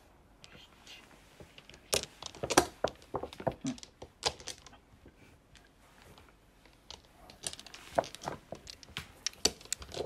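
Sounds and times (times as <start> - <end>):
tile clacking against tile: 1.4 - 5.7, 6.6 - 10.0.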